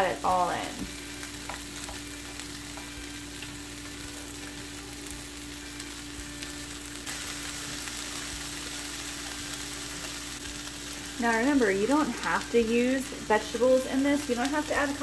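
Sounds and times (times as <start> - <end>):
food sizzling in a skillet: 0.0 - 15.0.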